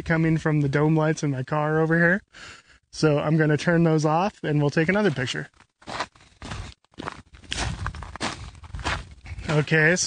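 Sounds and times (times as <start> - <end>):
footsteps walking: 4.9 - 10.0.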